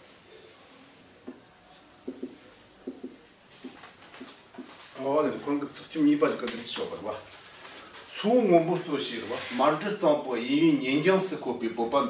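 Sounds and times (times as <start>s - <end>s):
marker pen squeaking on whiteboard: 0.1s - 4.8s.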